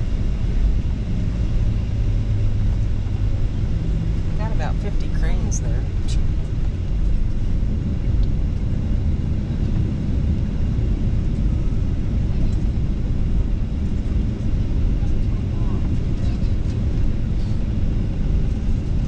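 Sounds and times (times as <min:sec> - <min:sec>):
jet airliner cabin rumble: 0:00.0 - 0:19.0.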